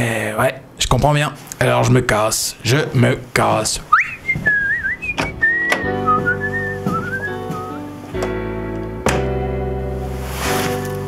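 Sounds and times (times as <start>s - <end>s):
person whistling a tune: 3.9s - 7.8s
background music chords: 5.1s - 11.0s.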